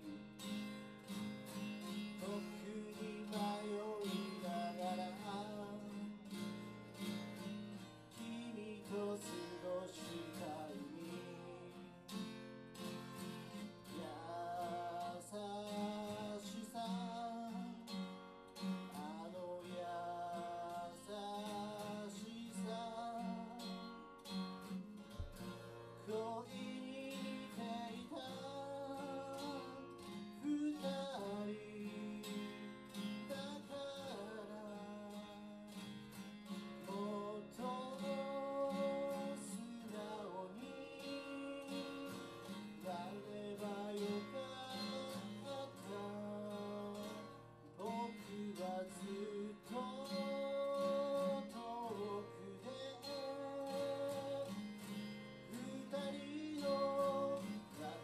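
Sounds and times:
man singing: 0.0s - 12.3s, 13.4s - 58.0s
acoustic guitar strumming: 0.0s - 58.0s.

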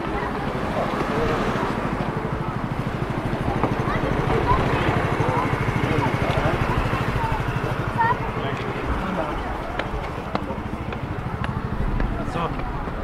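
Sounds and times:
people talking: 0.0s - 13.0s
vehicle engine running: 0.0s - 13.0s.

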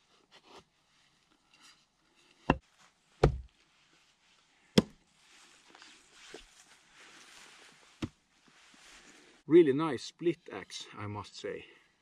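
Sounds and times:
axe chopping wood: 3.2s - 3.5s, 4.8s - 5.0s.

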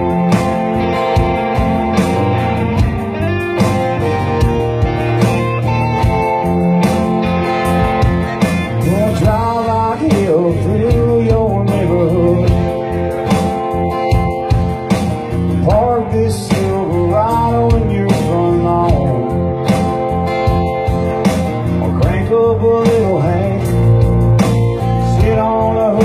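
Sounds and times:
electric lead guitar: 0.0s - 26.0s
steady drum beat: 0.0s - 26.0s
strummed acoustic guitar: 0.0s - 26.0s.

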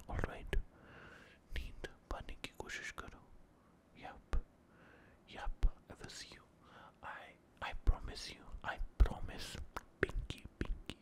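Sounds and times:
man whispering: 0.0s - 4.5s, 5.2s - 11.0s.

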